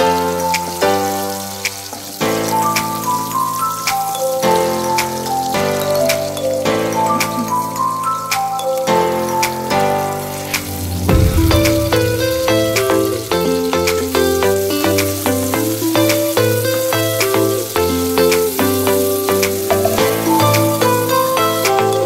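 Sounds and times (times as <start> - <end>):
vegetables sizzling in oil: 0.0 - 11.1, 11.8 - 22.0
background music with steady beat: 0.0 - 22.0.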